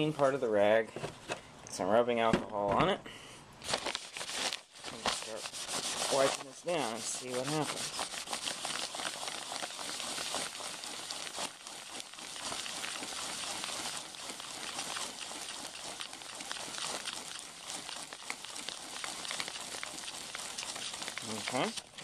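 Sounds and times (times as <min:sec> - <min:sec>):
paper towel scrubbing crinkly bag: 0:03.6 - 0:22.0.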